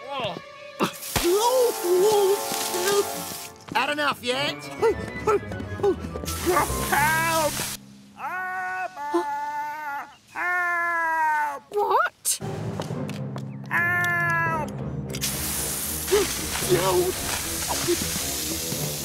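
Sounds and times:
background music: 0.0 - 8.2, 12.4 - 19.0
high-pressure hose spraying: 1.0 - 3.5, 6.3 - 7.8, 15.2 - 19.0
man crying out and groaning: 8.2 - 11.7.

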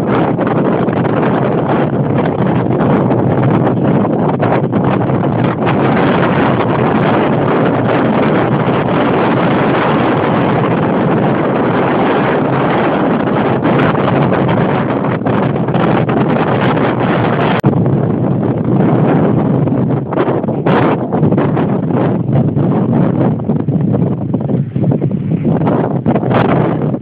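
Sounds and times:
wind buffeting microphone: 0.0 - 27.0.

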